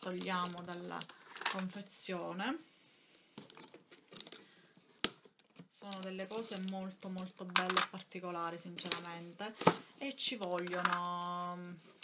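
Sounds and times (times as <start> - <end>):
packaging rustling and crinkling: 0.0 - 1.9, 3.3 - 12.0.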